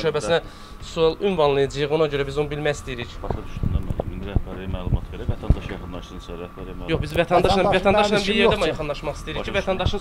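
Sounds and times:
faint steady hum: 0:00.0 - 0:10.0
men talking over one another: 0:00.0 - 0:10.0.

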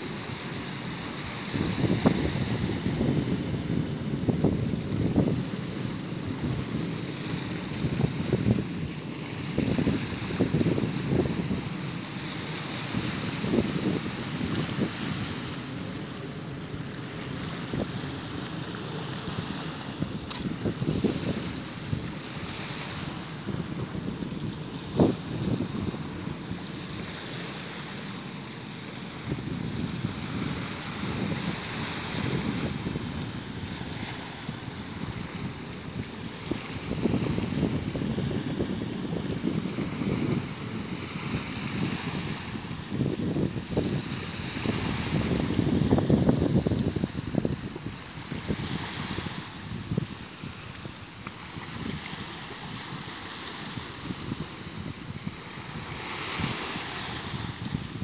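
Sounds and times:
small waves on pebble beach: 0:00.0 - 0:04.3, 0:05.1 - 0:58.0
wind buffeting microphone: 0:00.0 - 0:58.0.

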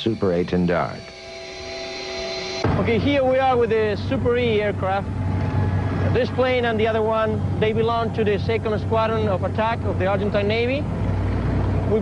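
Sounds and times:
heavy low rumble: 0:00.0 - 0:12.0
jet engine whine: 0:00.0 - 0:12.0.

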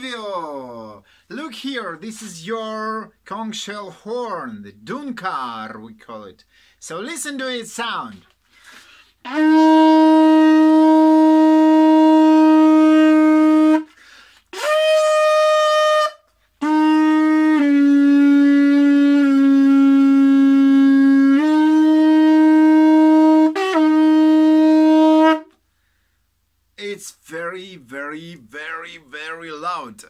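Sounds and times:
conch shell horn blasts: 0:09.2 - 0:25.5.

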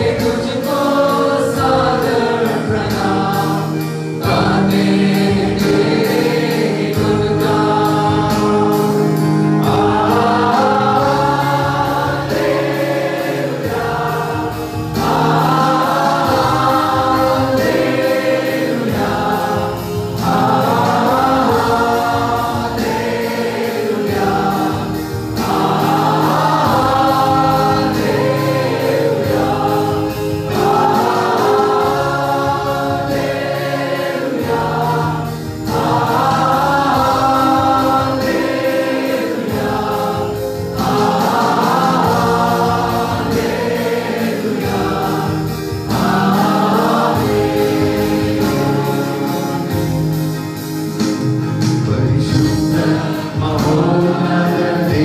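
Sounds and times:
mixed choir singing a hymn: 0:00.0 - 0:55.0.

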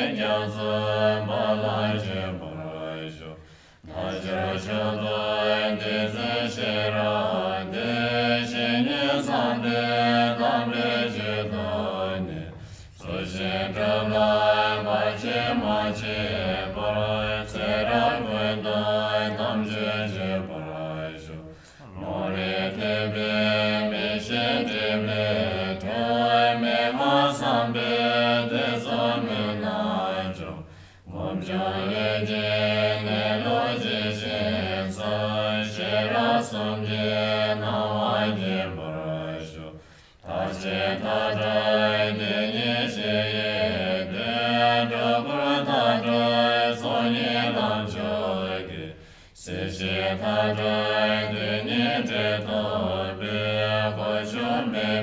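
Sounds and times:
prayer chanting in low voice: 0:00.0 - 0:55.0.

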